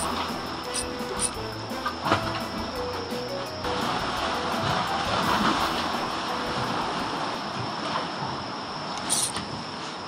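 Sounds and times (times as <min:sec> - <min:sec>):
faint background music: 0:00.0 - 0:07.6
sea waves: 0:00.0 - 0:10.0
wind: 0:00.0 - 0:10.0.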